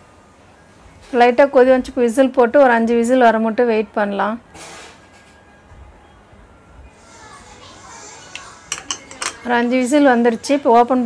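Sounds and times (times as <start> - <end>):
faint distant voices: 5.9 - 10.9
children's voices: 7.0 - 8.7.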